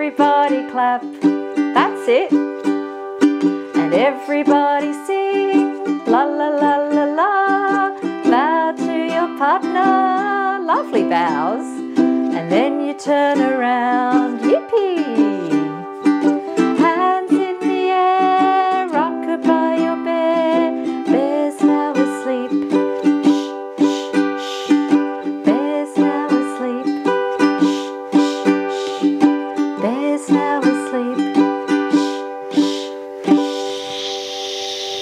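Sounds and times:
woman singing: 0.0 - 2.5, 3.7 - 15.9, 16.6 - 33.8
ukulele strumming: 0.0 - 35.0
person shushing: 23.2 - 25.0, 27.5 - 29.2, 31.8 - 34.3.

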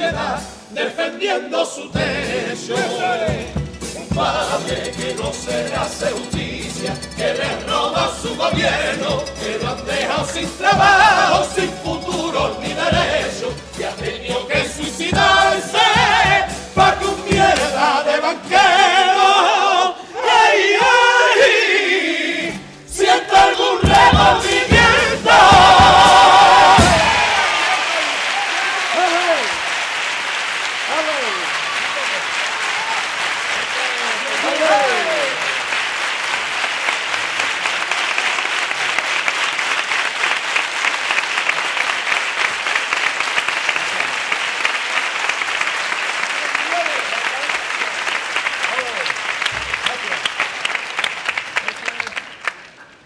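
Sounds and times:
male choir singing chord: 0.0 - 27.4
people shouting: 25.4 - 29.5
audience applauding: 26.0 - 53.0.

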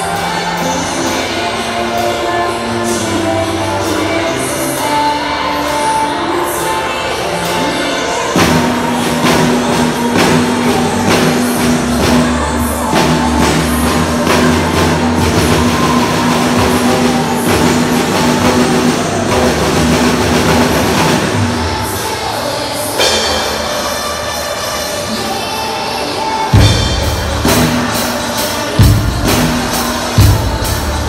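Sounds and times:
recorded backing music: 0.0 - 31.0
drum kit playing: 8.3 - 22.1, 26.5 - 31.0.

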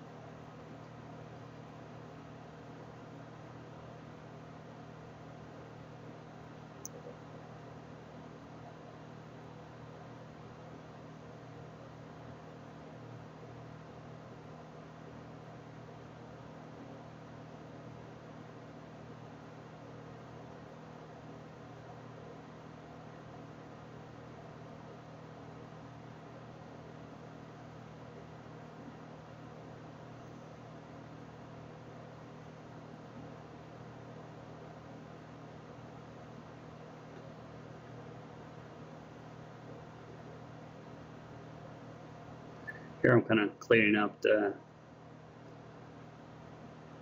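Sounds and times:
faint hum: 0.0 - 47.0.

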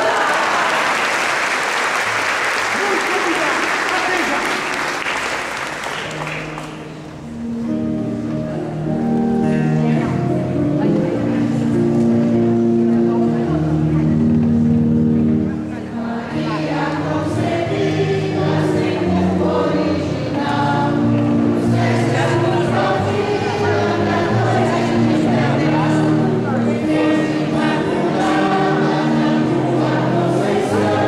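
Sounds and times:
choir singing a slow hymn: 15.7 - 31.0.

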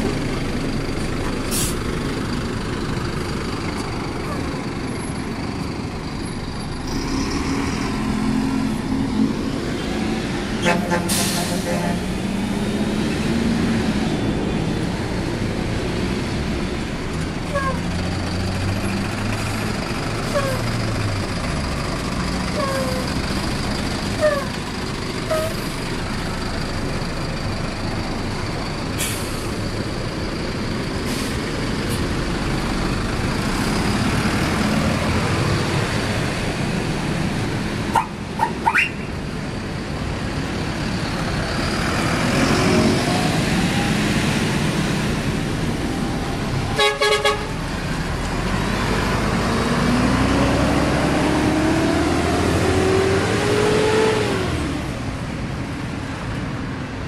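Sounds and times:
bus engines running: 0.0 - 57.0
horn blast: 10.6 - 12.0
short horn toots: 10.6 - 12.0.

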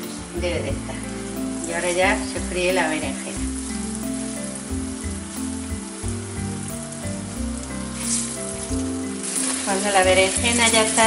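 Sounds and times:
food sizzling in hot oil: 0.0 - 11.0
soft background music: 0.0 - 11.0.

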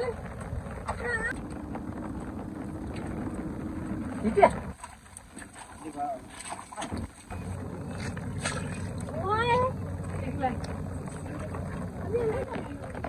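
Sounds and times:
low rumbling noise: 0.0 - 13.0.

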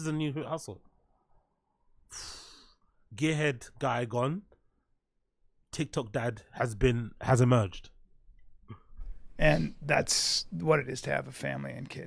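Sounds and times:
person sighing: 2.1 - 2.7.

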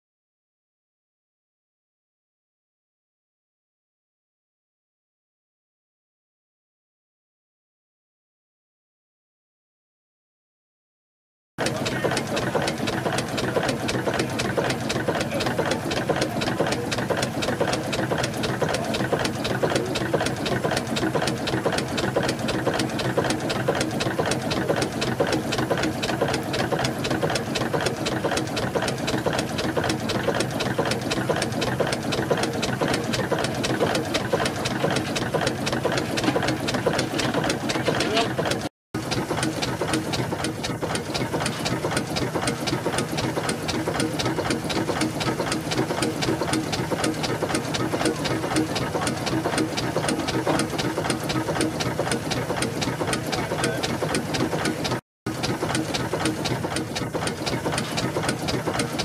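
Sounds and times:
steam engine mechanical beat: 11.6 - 59.0.

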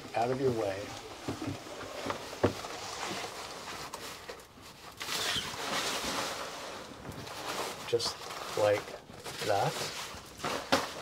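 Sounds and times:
curtain runners sliding: 0.7 - 11.0
shower curtain rustling: 0.7 - 11.0.

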